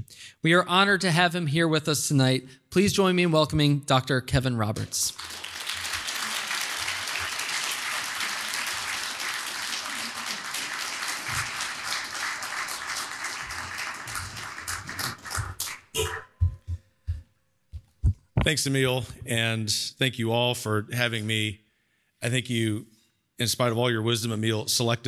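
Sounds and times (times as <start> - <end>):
audience applauding: 5.1 - 16.0.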